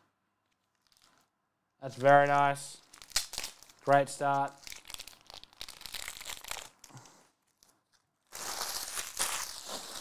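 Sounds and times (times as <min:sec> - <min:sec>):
foil wrappers crinkling: 0:00.5 - 0:01.3, 0:02.8 - 0:10.0.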